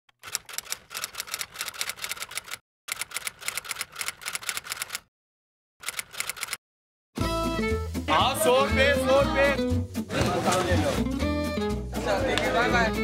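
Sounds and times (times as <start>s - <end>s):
typewriter keys clacking: 0.2s - 5.0s, 5.8s - 6.6s.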